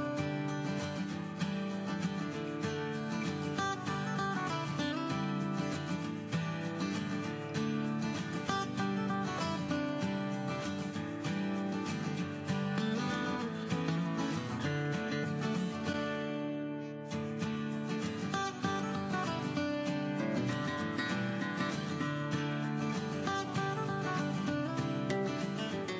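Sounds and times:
acoustic guitar music: 0.0 - 25.9.

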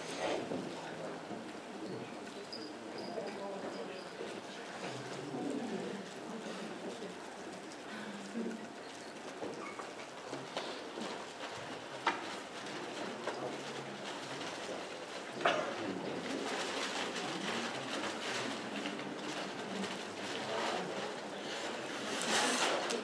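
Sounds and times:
murmur of people talking: 0.0 - 23.0.

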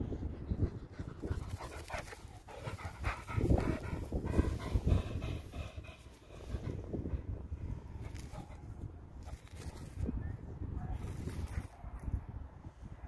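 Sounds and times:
dog panting: 0.3 - 7.3.

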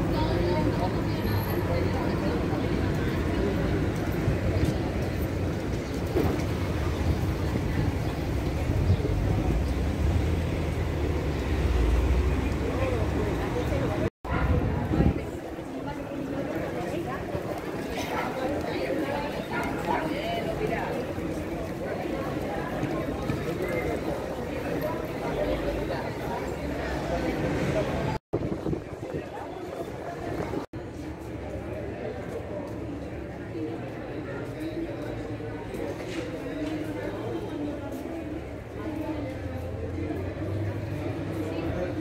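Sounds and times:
low rumble of street noise: 0.0 - 42.0
passers-by talking: 0.0 - 42.0.

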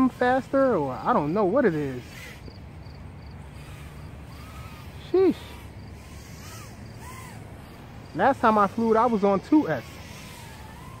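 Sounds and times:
distant drone motors whining: 0.0 - 11.0.

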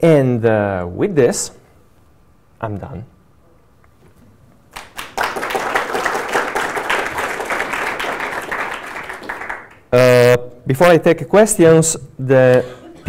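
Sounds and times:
audience applauding: 4.7 - 9.9.

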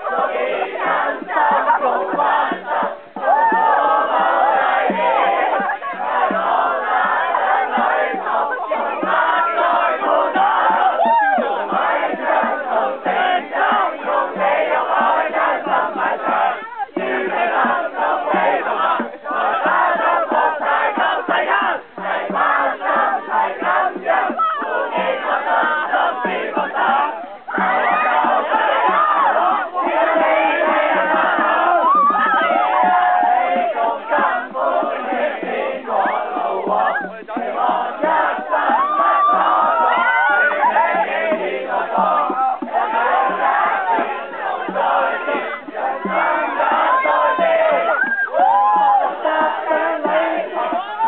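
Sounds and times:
crowd singing loudly: 0.0 - 51.0
group chanting and shouting: 0.0 - 51.0
regular beat: 0.0 - 51.0.

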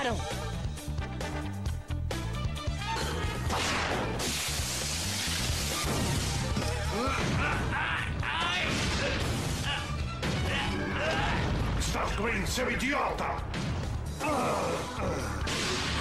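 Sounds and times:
background music: 0.0 - 16.0
loud crash: 3.5 - 6.6.

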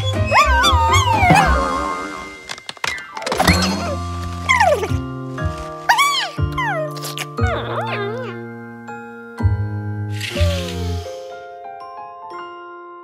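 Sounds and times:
comic cartoon music: 0.0 - 8.6, 10.0 - 11.4.

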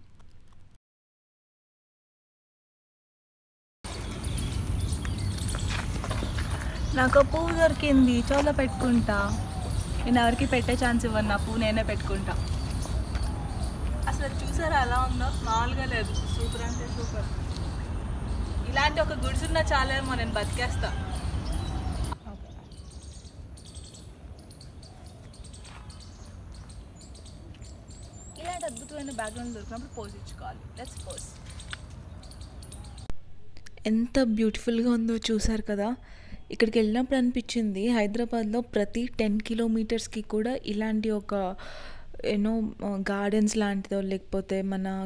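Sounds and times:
birds chirping: 3.9 - 33.1
woman speaking: 6.9 - 12.5, 14.0 - 17.4, 18.6 - 21.0, 28.4 - 31.4, 33.8 - 41.6, 42.2 - 45.0.

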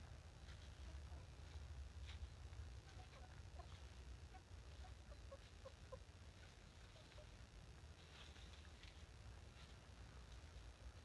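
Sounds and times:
low steady rumble: 0.0 - 11.0
chickens clucking: 0.4 - 7.4.

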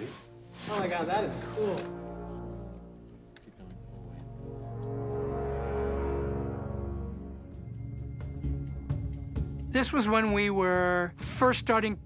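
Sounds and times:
dark orchestral strings: 0.0 - 9.1
deep bass tone: 2.0 - 9.7.

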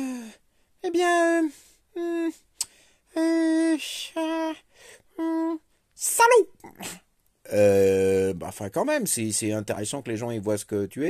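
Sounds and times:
person making wordless vocal sounds: 0.0 - 5.7, 6.6 - 8.4.

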